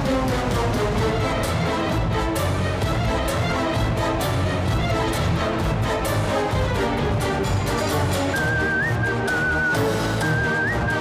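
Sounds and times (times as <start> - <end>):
background music with beat: 0.0 - 11.0
whistled melody: 7.4 - 11.0.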